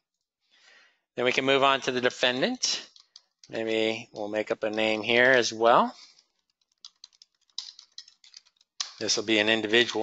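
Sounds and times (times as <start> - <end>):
typing on computer keyboard: 6.5 - 8.7.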